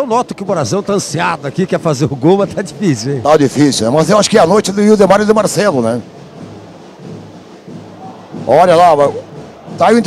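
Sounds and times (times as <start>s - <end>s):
drumming in stands: 0.0s - 10.0s.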